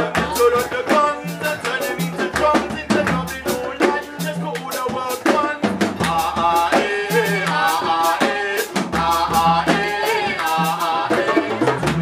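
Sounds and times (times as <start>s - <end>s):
drum kit beat: 0.0s - 12.0s
live band playing: 0.0s - 12.0s.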